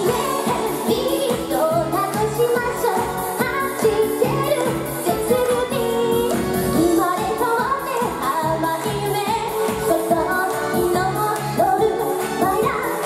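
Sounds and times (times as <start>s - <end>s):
dance-pop music: 0.0s - 13.0s
woman singing into microphone: 0.0s - 13.0s.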